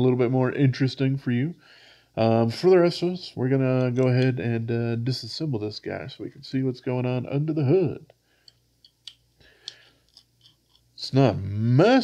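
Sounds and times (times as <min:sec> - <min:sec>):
screwdriver clicks and scrapes: 0:08.4 - 0:10.9.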